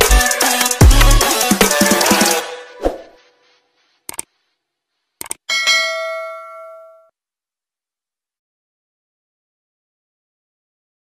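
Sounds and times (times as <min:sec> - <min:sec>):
mouse clicks: 0:04.1 - 0:04.3
notification bell ding: 0:05.5 - 0:07.1.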